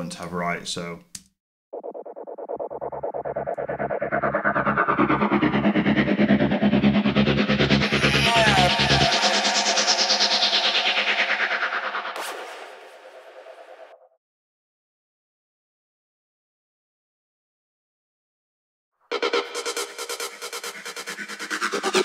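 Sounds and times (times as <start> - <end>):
sustained synth atmosphere: 1.8 - 14.1
rising synth sweep: 1.8 - 14.2.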